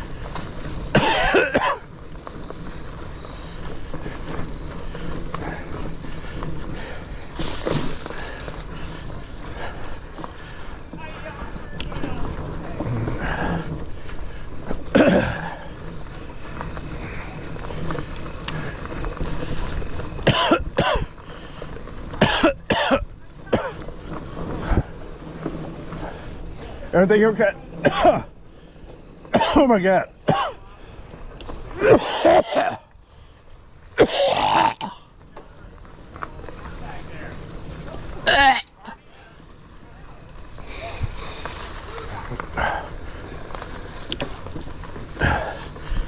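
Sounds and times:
mountain bike rolling on leafy trail: 0:00.0 - 0:46.0
man coughing: 0:01.0 - 0:01.8, 0:14.9 - 0:15.4, 0:20.2 - 0:21.1, 0:22.2 - 0:23.8, 0:27.8 - 0:28.3, 0:29.3 - 0:29.7, 0:30.3 - 0:30.6, 0:31.8 - 0:32.9, 0:34.0 - 0:34.8.

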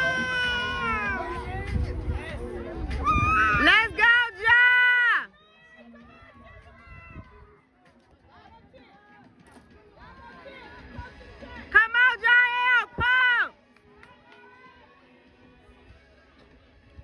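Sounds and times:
spectators shouting and cheering: 0:00.0 - 0:01.7, 0:02.9 - 0:07.6, 0:10.0 - 0:14.9.

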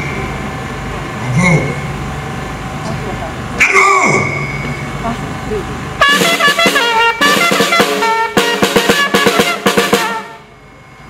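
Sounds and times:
low background hum: 0:00.0 - 0:11.0
person shouting a command: 0:03.6 - 0:04.4.

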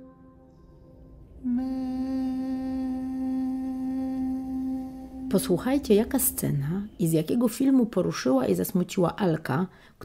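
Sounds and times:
person humming: 0:01.4 - 0:06.4.

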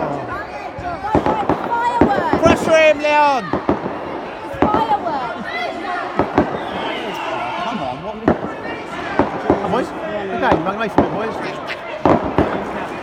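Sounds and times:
children's voices and shouts: 0:00.0 - 0:10.1
fireworks bangs: 0:00.8 - 0:13.0.

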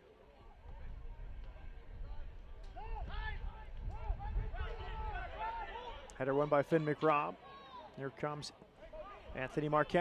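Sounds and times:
low open-air field rumble: 0:00.0 - 0:06.3.

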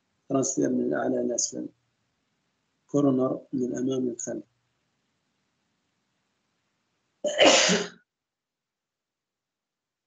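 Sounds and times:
person coughing: 0:07.3 - 0:07.9.

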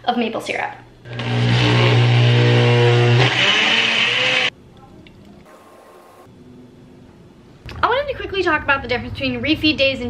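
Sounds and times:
blender motor blending ice: 0:01.1 - 0:04.5.

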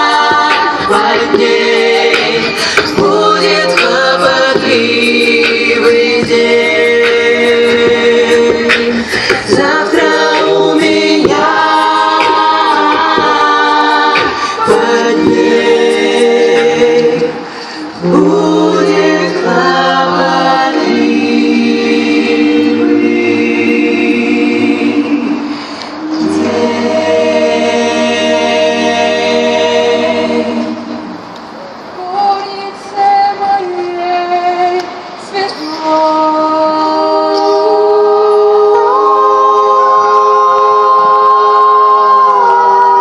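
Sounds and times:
female choir singing in harmony: 0:00.0 - 0:43.0.

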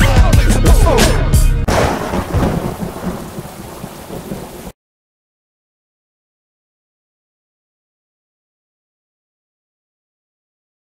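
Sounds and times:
broad rumbling noise: 0:01.7 - 0:04.7.

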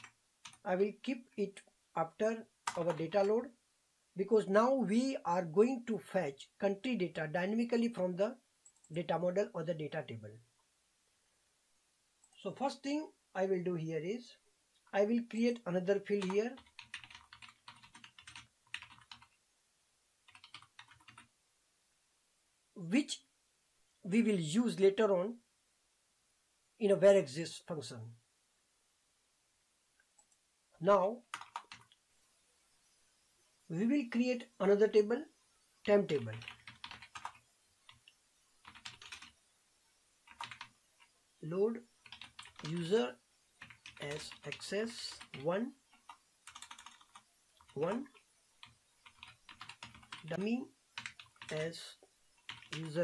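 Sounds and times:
faint keyboard typing: 0:00.0 - 0:01.8, 0:02.6 - 0:03.5, 0:08.6 - 0:09.1, 0:12.2 - 0:12.5, 0:14.8 - 0:19.4, 0:20.2 - 0:21.3, 0:30.0 - 0:30.5, 0:31.1 - 0:32.0, 0:35.8 - 0:39.4, 0:40.2 - 0:53.0.

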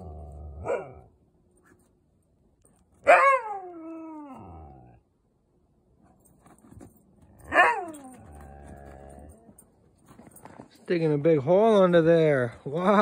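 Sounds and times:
dog growling: 0:00.0 - 0:01.0, 0:03.9 - 0:05.0, 0:08.0 - 0:09.6
dog yowling: 0:00.4 - 0:01.1, 0:03.0 - 0:05.0, 0:07.5 - 0:09.5.

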